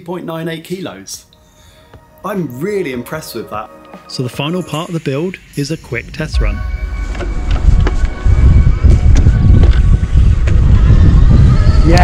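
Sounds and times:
wind buffeting microphone: 6.3s - 12.0s.

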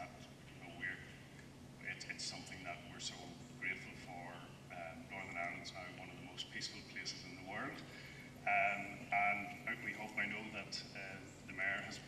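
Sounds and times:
man speaking at a microphone: 0.0s - 1.2s, 1.8s - 12.0s.

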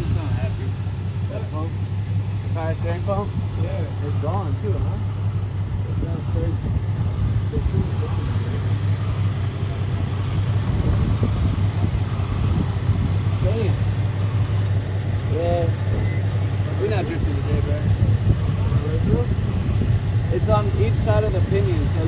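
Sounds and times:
car engine idling: 0.0s - 22.0s.

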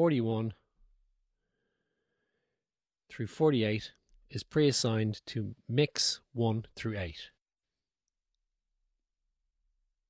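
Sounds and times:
man speaking: 0.0s - 0.6s, 3.1s - 7.4s.

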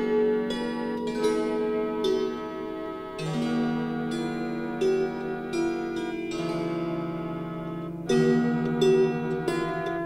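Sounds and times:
slow harp music: 0.0s - 10.0s.

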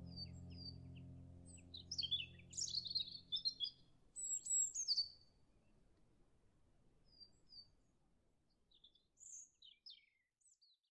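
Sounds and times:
soft music: 0.0s - 3.8s.

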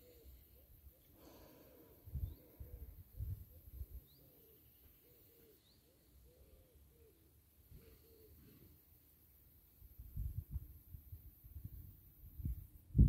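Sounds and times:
dove cooing: 2.2s - 8.7s.

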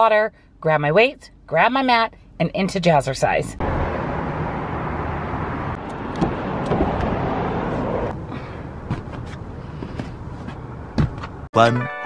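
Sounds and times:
road traffic noise: 3.2s - 11.5s.

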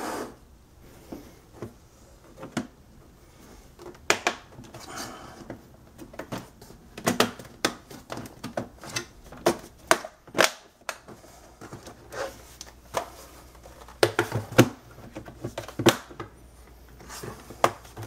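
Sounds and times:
plastic clips snapping: 7.0s - 11.1s.

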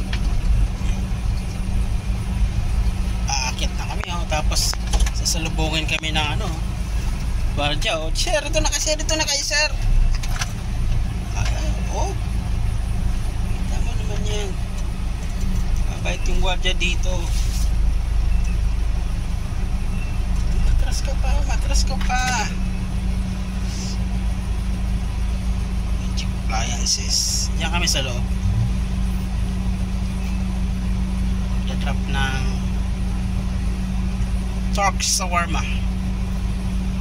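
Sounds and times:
low engine and road rumble: 0.0s - 37.0s
light clicks and rattles: 3.9s - 6.1s.

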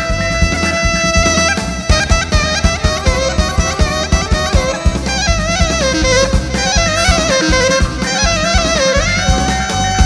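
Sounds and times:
clarinet ornamented melody: 0.0s - 10.0s
steady drum beat: 0.0s - 10.0s.

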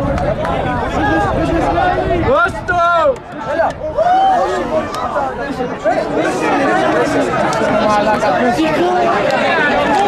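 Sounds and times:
voices calling and shouting: 0.0s - 10.0s.

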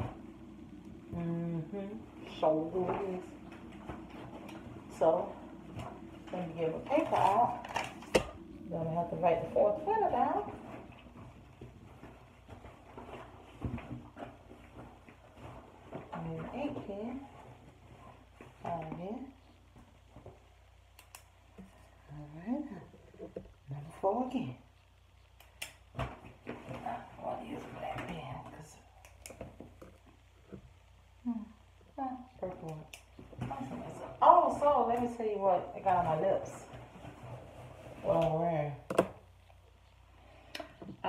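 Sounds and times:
soft handling knocks and rustles: 10.2s - 18.7s.

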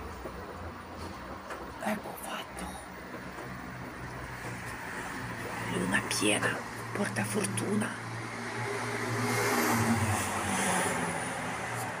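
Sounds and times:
tyre noise on road: 0.0s - 12.0s.

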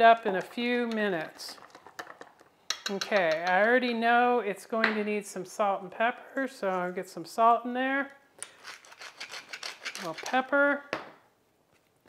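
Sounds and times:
pepper mill grinding: 8.4s - 10.5s.

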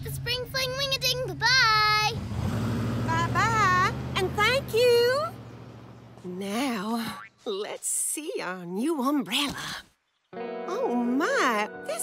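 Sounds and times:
cartoon truck engine humming: 0.0s - 7.3s.

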